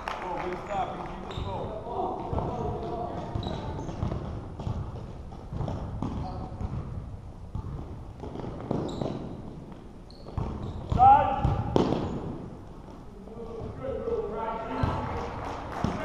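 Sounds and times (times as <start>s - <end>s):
basketball bouncing on wooden floor: 2.2s - 13.0s.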